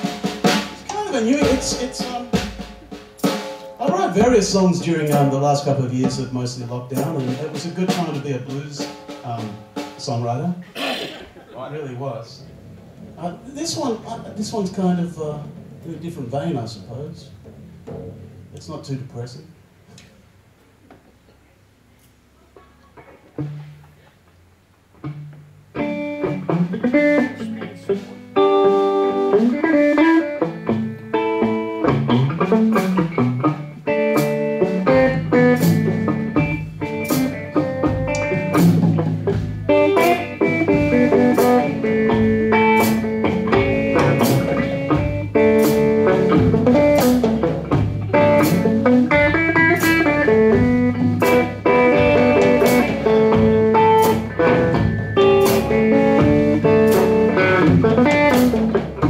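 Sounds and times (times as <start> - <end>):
blues guitar riff: 0.0 - 18.6, 22.2 - 59.0
drum kit beat: 0.0 - 18.6, 25.0 - 59.0.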